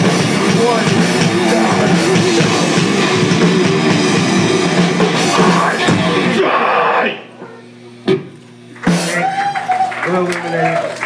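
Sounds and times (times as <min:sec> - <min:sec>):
live metal band playing: 0:00.0 - 0:07.3, 0:08.8 - 0:09.6
low stage hum: 0:00.0 - 0:11.0
voice over speakers: 0:00.2 - 0:02.9.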